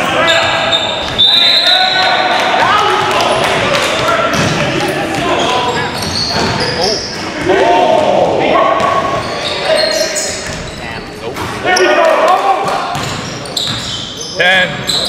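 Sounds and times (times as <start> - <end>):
sneaker squeaks: 0.0 - 2.2, 4.3 - 7.5, 8.6 - 12.0, 12.8 - 15.0
players calling out: 0.0 - 15.0
basketball bouncing: 3.0 - 8.2, 12.6 - 13.9.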